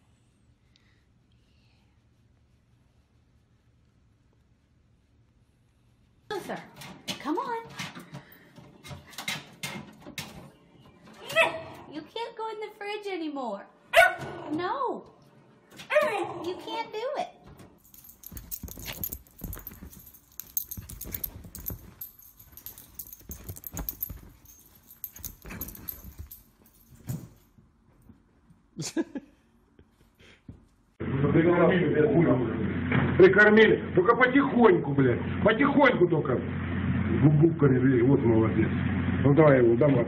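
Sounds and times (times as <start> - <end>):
knocks and rustling: 17.5 - 27.5.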